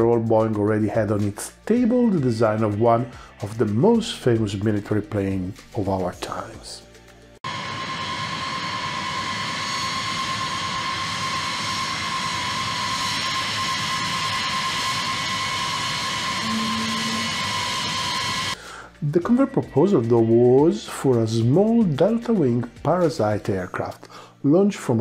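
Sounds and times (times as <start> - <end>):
jet engines whining: 7.4 - 18.6.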